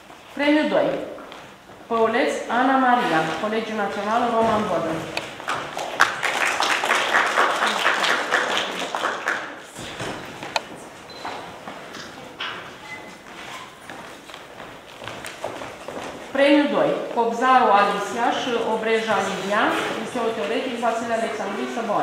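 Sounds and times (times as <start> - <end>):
audience applauding: 5.2 - 9.8.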